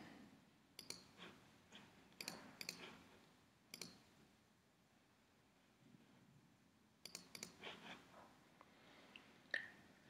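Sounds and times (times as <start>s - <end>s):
computer mouse clicks: 0.8s - 1.4s, 2.2s - 3.1s, 3.7s - 4.1s, 7.0s - 7.8s.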